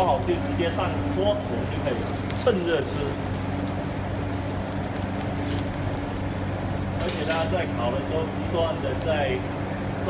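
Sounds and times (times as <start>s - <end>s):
charcoal fire crackling: 0.0s - 10.0s
low mechanical hum: 0.0s - 10.0s.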